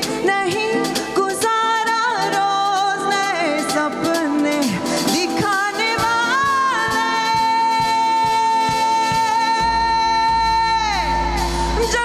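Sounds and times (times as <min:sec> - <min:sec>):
low bass: 0:09.6 - 0:12.0.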